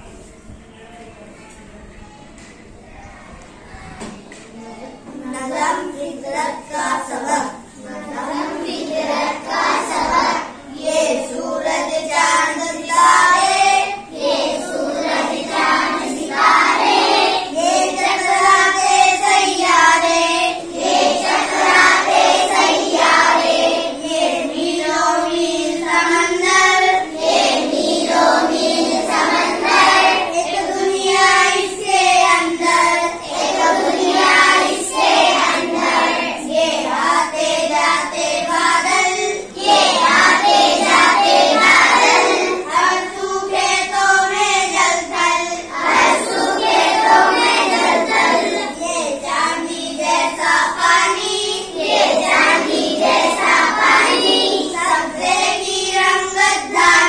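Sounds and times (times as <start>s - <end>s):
children singing: 5.4s - 57.0s.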